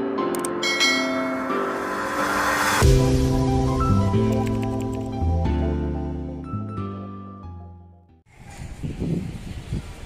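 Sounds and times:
background music: 0.0 - 8.2
notification bell chime: 0.6 - 1.6.

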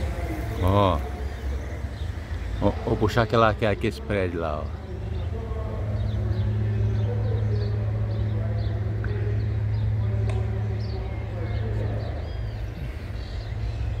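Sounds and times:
birds chirping: 0.0 - 14.0
faint distant voices: 0.0 - 14.0
low engine-like hum: 0.0 - 14.0.

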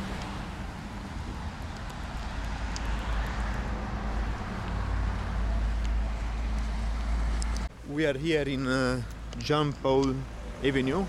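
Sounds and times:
low traffic rumble: 0.0 - 11.0
road traffic hum: 0.0 - 11.0.

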